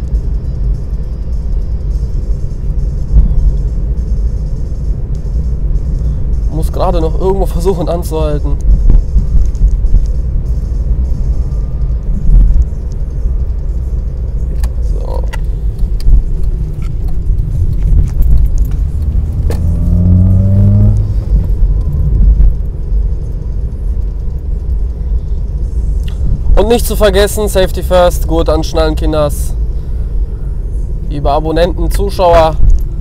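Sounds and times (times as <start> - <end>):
car engine and road rumble: 0.0 - 33.0.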